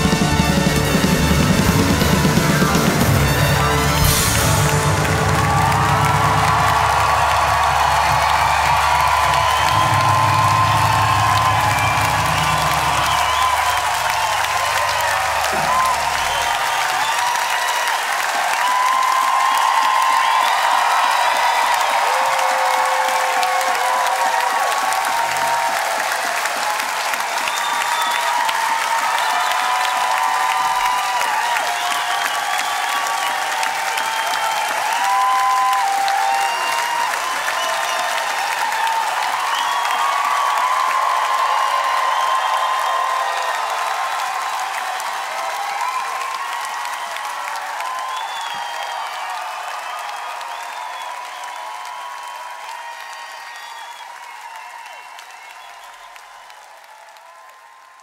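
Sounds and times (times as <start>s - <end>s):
audience applauding and cheering: 0.0s - 58.0s.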